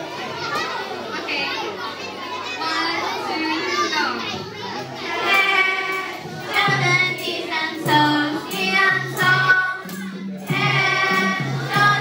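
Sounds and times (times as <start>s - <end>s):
children chattering and calling out: 0.0s - 12.0s.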